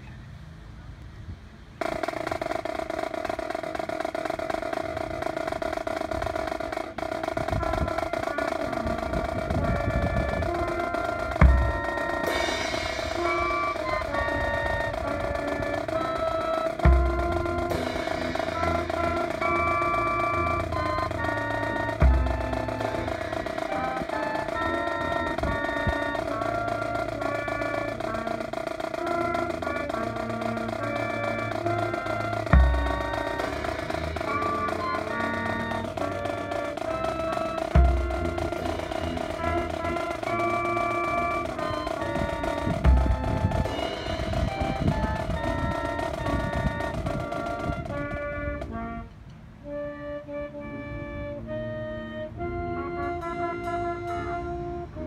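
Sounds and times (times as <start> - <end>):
heavy bass drum strikes: 1.8 - 24.6, 27.9 - 48.1
brass band playing slow piece: 1.8 - 55.0.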